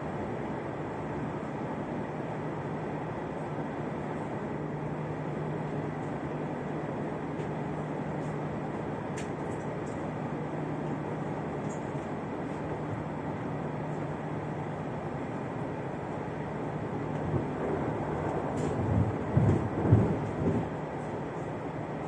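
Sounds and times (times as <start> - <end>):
low engine hum: 0.0 - 22.0.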